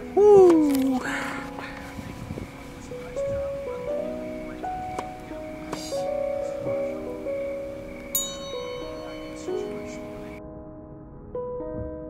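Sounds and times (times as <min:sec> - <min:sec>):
soft sustained background music: 0:00.0 - 0:12.0
bell-like note ringing: 0:05.1 - 0:10.4.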